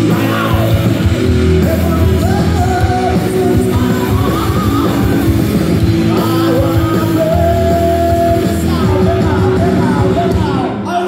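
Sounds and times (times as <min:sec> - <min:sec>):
bass guitar: 0:00.0 - 0:11.0
drums: 0:00.0 - 0:11.0
electric guitars: 0:00.0 - 0:11.0
person singing: 0:00.0 - 0:11.0.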